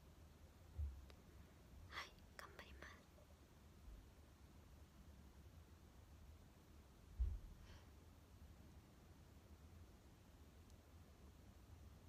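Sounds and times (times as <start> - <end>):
woman whispering: 1.9 - 3.1.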